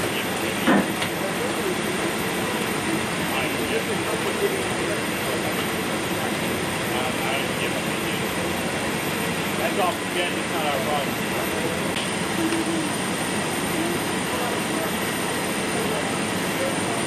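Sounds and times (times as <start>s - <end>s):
steady engine noise: 0.0s - 17.0s.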